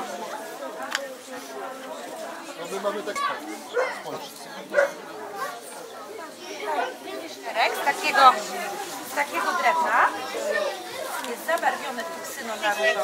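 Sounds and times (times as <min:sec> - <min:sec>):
children's voices: 0:00.0 - 0:13.0
indistinct chatter of voices: 0:00.0 - 0:13.0.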